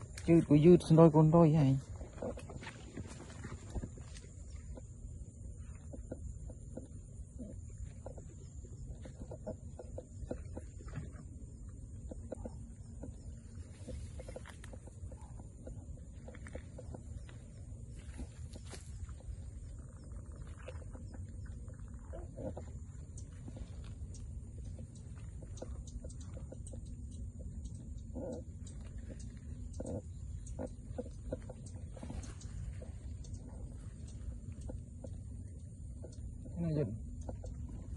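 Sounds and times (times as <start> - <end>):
low wind rumble: 0.0 - 37.9.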